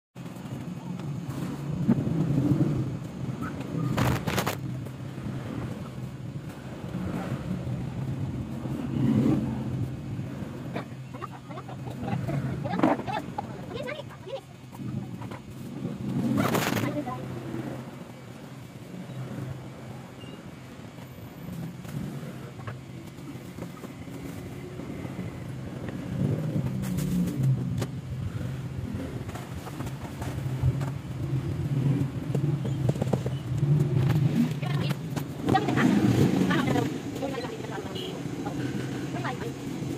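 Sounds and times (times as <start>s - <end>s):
road traffic: 0.2s - 39.9s
steady low hum: 0.2s - 39.9s.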